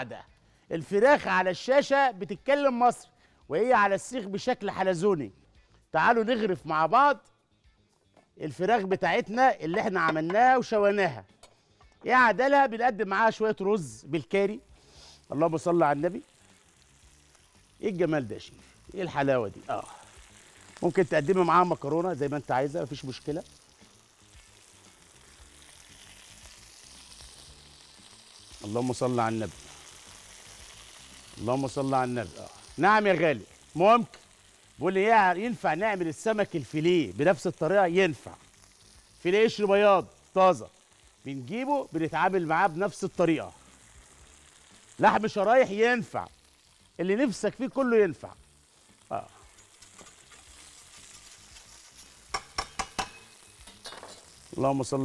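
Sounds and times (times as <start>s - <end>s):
chicken sizzling in a pan: 13.3s - 55.0s
metal tongs clicking on pan: 49.6s - 51.4s, 52.0s - 54.4s.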